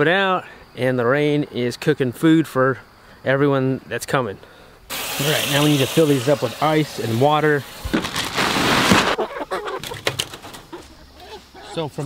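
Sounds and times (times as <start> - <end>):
chickens clucking: 7.9 - 12.0.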